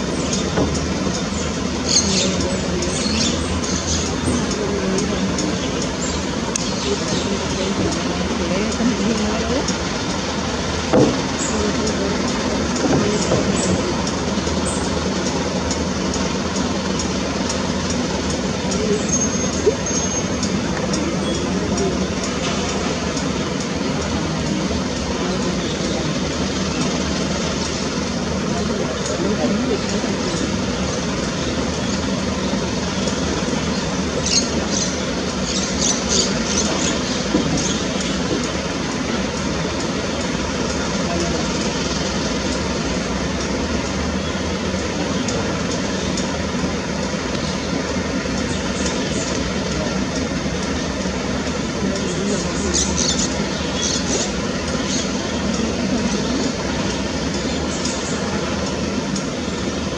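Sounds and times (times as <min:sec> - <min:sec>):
murmuring voices: 0:00.0 - 0:48.3, 0:49.3 - 0:59.9
distant traffic hum: 0:00.0 - 0:59.9.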